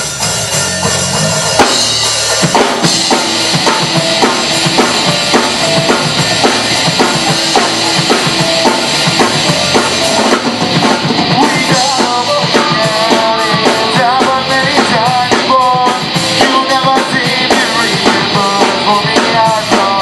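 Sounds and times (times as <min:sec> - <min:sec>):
wavering high melody: 0:00.0 - 0:14.7
live rock band playing: 0:00.0 - 0:20.0.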